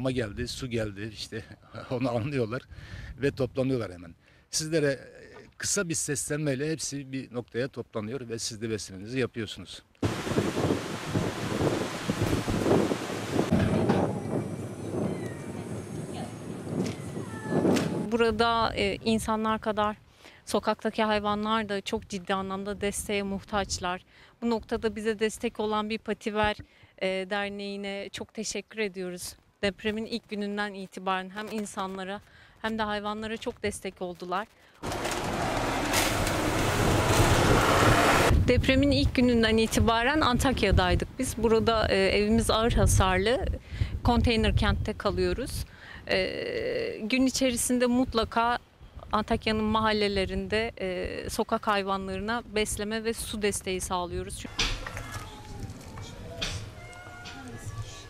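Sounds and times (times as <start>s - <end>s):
wind buffeting microphone: 10.0s - 19.3s, 36.1s - 45.7s.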